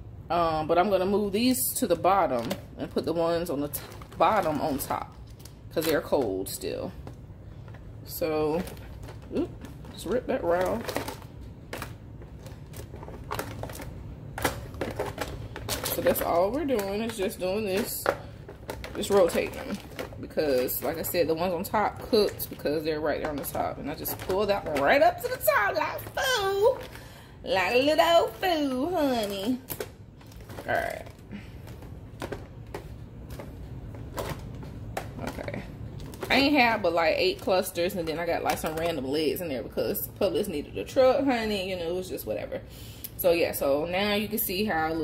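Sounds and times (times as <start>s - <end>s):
crab legs clattering in plastic bowl: 8.9s - 21.8s.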